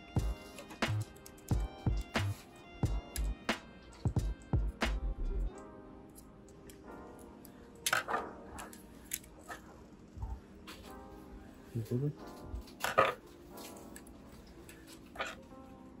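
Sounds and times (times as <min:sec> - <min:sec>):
background music: 0:00.0 - 0:16.0.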